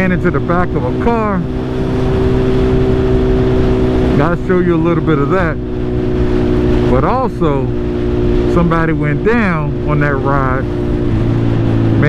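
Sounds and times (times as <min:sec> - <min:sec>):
motorcycle engine cruising: 0:00.0 - 0:12.0
road rumble: 0:00.0 - 0:12.0
wind: 0:00.0 - 0:12.0.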